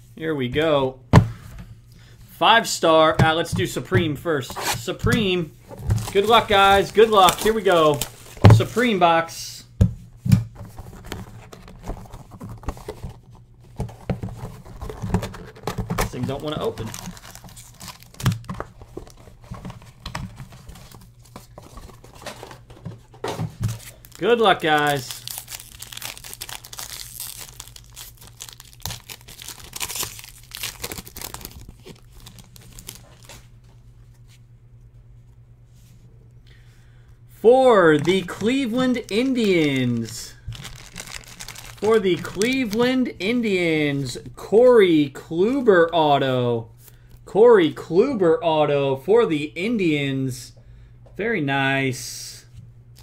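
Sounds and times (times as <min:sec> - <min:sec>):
foil pack tearing and crinkling: 0:05.9 - 0:08.4, 0:14.3 - 0:19.2, 0:23.7 - 0:33.4, 0:37.9 - 0:42.8
fingers scratching cellophane wrap: 0:23.9 - 0:33.3, 0:38.9 - 0:42.7.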